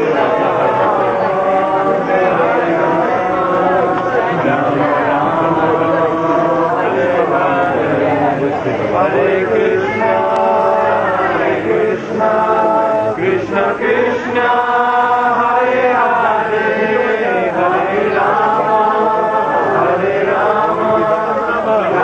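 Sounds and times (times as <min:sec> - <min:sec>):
devotional chanting: 0:00.0 - 0:22.0.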